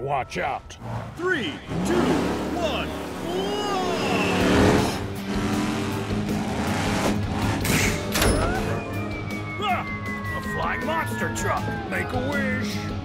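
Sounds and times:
background music: 0:00.0 - 0:13.0
cartoon truck engine revving: 0:01.6 - 0:09.0.

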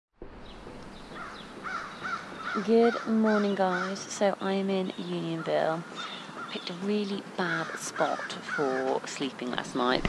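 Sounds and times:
bird calling: 0:00.4 - 0:10.0.

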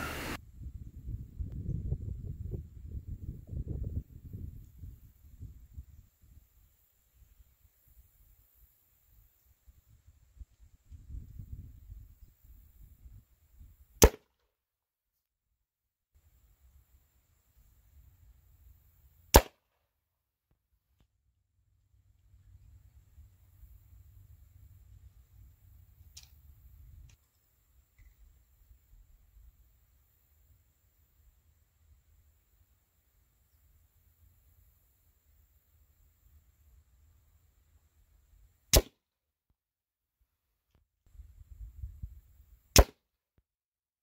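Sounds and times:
faint wind rumble: 0:00.0 - 0:06.6
airgun shot crack: 0:14.0 - 0:14.3, 0:19.3 - 0:19.6, 0:38.7 - 0:39.0, 0:42.8 - 0:43.0.

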